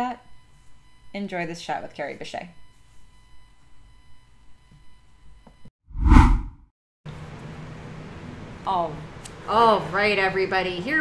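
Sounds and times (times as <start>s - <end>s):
whoosh sound effect: 6.0s - 6.6s.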